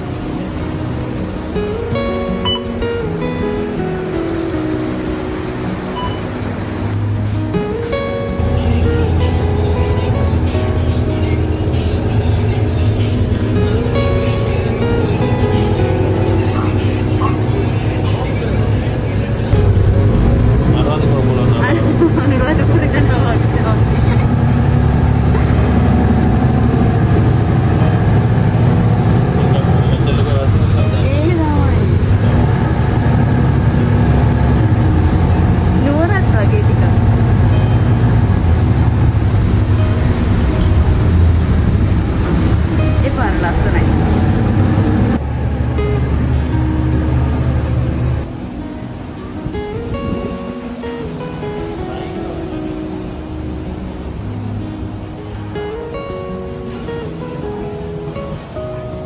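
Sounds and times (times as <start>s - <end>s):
background music: 0.0s - 59.0s
bus engine rumble: 0.0s - 59.0s.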